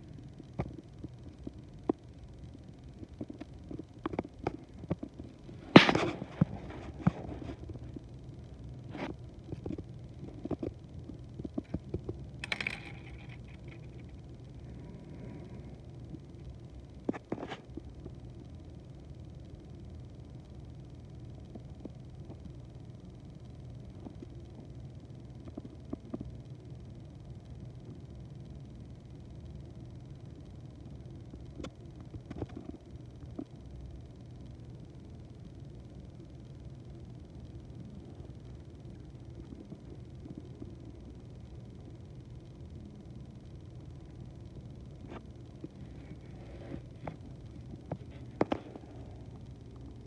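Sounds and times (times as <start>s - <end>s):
low hum: 0.0s - 50.0s
small electric motor humming: 11.4s - 16.4s.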